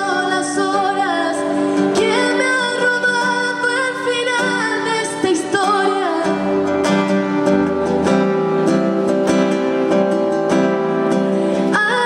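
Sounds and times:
woman singing: 0.0s - 7.0s, 11.5s - 12.0s
acoustic guitar plucked chords: 0.0s - 12.0s.

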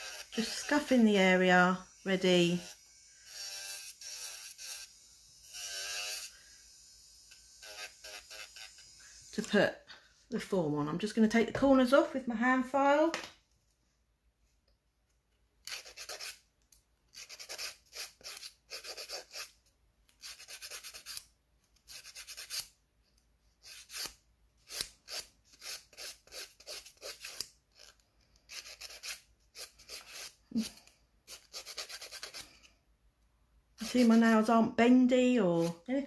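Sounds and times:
nail file rubbing fingernail: 0.0s - 1.0s, 7.6s - 8.9s, 15.6s - 16.5s, 17.1s - 22.8s, 23.6s - 32.8s, 33.8s - 34.4s.

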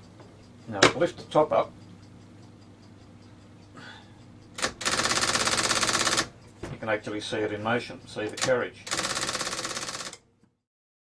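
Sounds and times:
electric typewriter typing: 4.6s - 6.3s, 8.2s - 10.2s.

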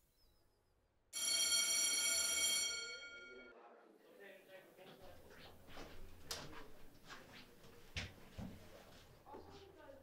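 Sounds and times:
electronic school bell tone: 1.2s - 3.5s.

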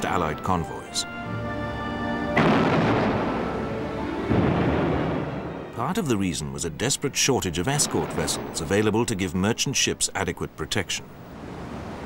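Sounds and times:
background music chord: 0.0s - 8.0s
heavy gun boom: 2.4s - 3.7s, 4.3s - 5.7s.

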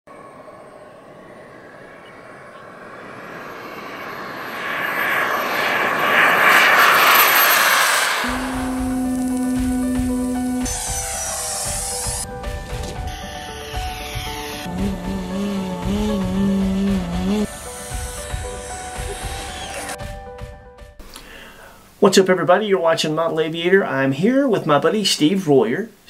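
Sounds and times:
model jet turbine whine: 0.1s - 12.4s, 13.1s - 20.1s
jet noise rush: 0.1s - 20.5s
music with low note and beat: 8.3s - 21.0s.

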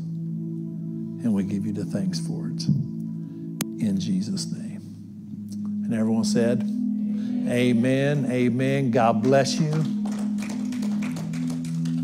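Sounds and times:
electric keyboard chords: 0.0s - 12.0s.

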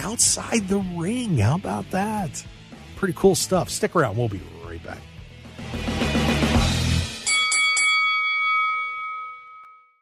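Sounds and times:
struck bell ringing: 7.2s - 10.0s.

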